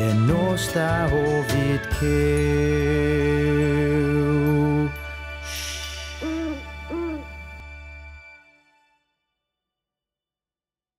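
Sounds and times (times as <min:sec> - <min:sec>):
high sparkling shimmer: 0:02.2 - 0:08.0
cartoon owl hoots: 0:06.2 - 0:07.3.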